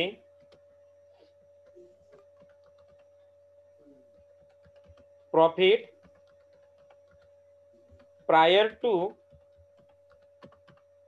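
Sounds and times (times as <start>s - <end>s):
computer keyboard typing: 0.3s - 0.8s, 1.6s - 3.4s, 4.0s - 11.0s.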